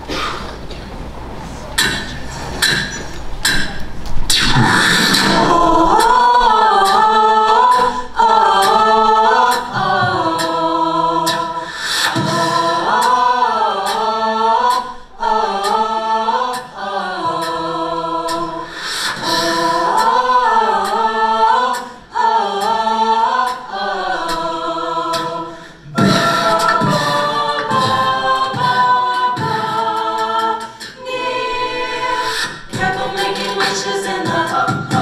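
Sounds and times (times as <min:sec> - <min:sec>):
choir singing in harmony: 0:04.3 - 0:35.0.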